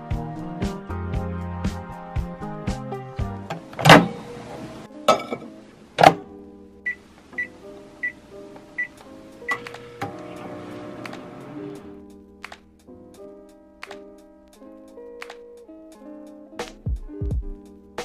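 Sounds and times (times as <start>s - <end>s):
background music: 0.0s - 18.0s
microwave keypad beeps: 6.9s - 8.2s, 8.8s - 9.8s.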